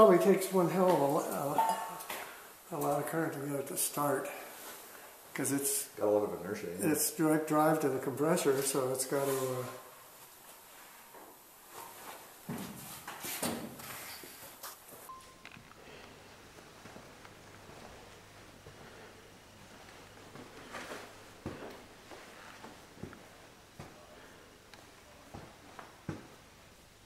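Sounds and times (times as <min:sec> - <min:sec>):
faint footsteps: 0:10.2 - 0:26.5
low steady hum: 0:15.0 - 0:27.0.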